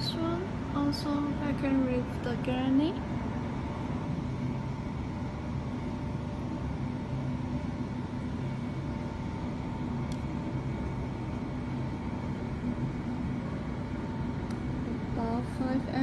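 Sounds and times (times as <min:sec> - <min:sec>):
machine hum with low drone: 0:00.0 - 0:16.0.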